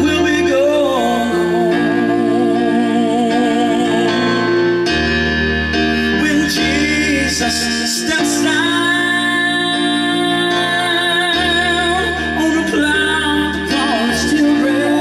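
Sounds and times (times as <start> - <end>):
man singing gospel ballad: 0.0 - 4.8, 5.8 - 15.0
piano accompaniment: 0.0 - 15.0.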